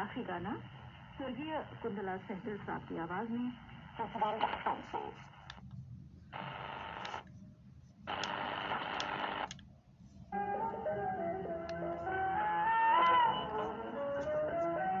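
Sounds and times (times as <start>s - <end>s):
shortwave receiver hiss: 0.0s - 15.0s
song through radio speaker: 4.0s - 5.2s, 10.3s - 15.0s.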